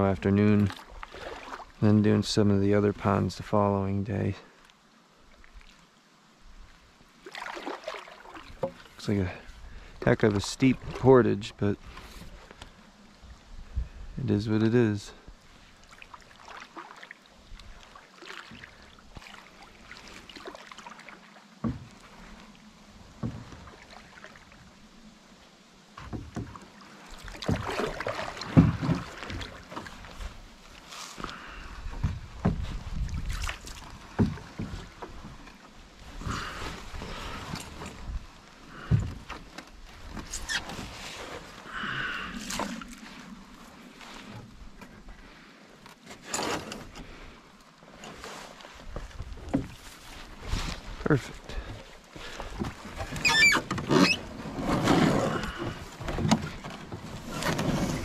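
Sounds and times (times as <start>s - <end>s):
paddle knocking against hull: 8.0s - 9.0s, 21.6s - 22.1s, 26.0s - 30.4s, 31.2s - 35.6s, 38.8s - 41.5s, 48.9s - 50.2s, 51.6s - 58.0s
canoe hull thumping and scraping: 8.0s - 9.2s, 21.6s - 24.0s, 25.9s - 45.2s, 45.8s - 58.0s.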